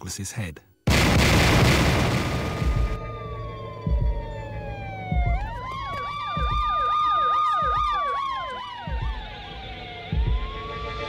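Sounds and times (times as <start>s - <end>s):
low thuds: 0.9s - 8.1s, 8.8s - 10.7s
siren wail: 2.1s - 11.0s
yelping siren: 2.5s - 11.0s.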